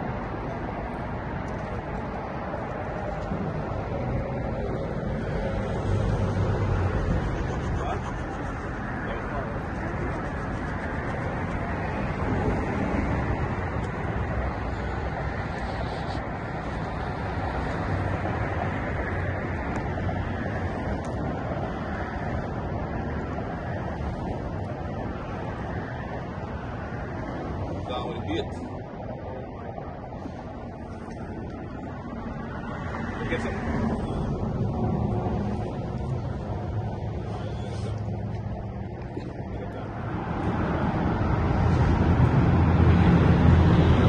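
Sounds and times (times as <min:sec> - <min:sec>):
wind buffeting microphone: 0:00.0 - 0:37.3.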